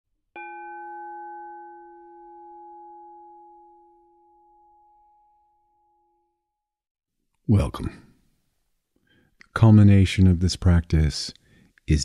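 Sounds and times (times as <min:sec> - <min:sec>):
struck bell ringing: 0:00.4 - 0:06.3.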